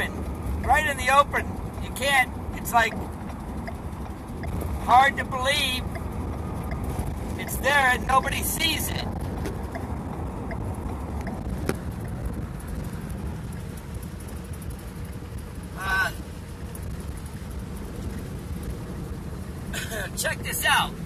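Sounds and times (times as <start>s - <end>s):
vehicle driving rumble from cab: 0.0s - 21.0s.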